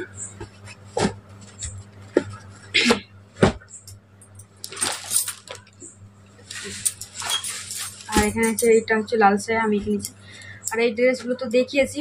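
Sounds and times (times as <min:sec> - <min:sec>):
cloth rustling: 0:06.4 - 0:08.6.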